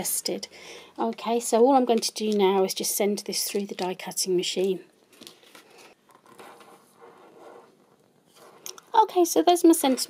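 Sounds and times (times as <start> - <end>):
cardstock rustling and scraping: 5.3 - 8.8.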